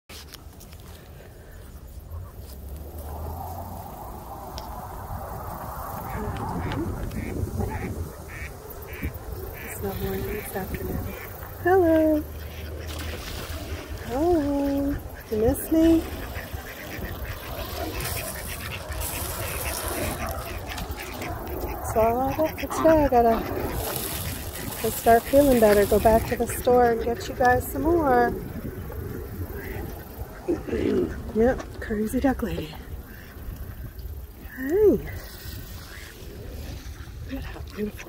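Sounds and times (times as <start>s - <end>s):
wind rumble on microphone: 0.1s - 38.0s
ducks quacking: 5.9s - 38.0s.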